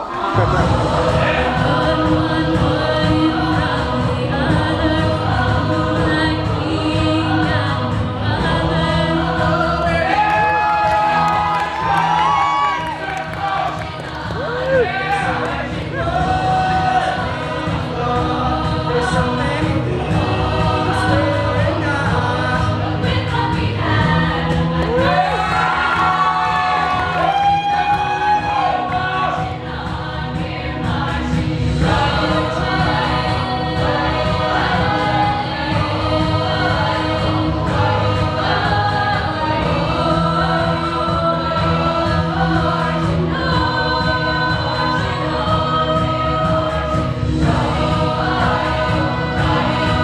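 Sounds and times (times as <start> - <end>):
vocal ensemble singing: 0.0 - 50.0.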